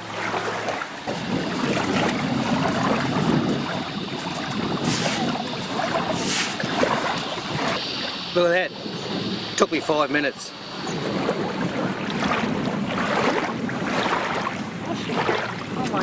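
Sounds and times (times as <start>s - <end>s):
wind on microphone: 0.0s - 16.0s
hands scraping through dry sand: 4.8s - 7.3s.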